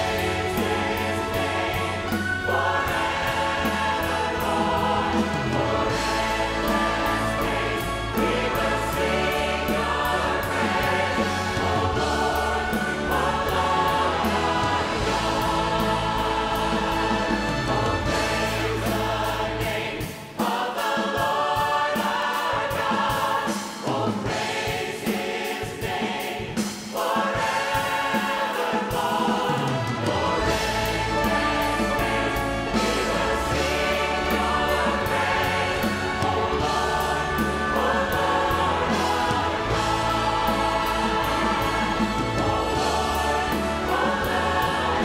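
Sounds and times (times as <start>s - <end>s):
band with drums and cymbals: 0.0s - 45.0s
choir singing gospel: 0.0s - 45.0s.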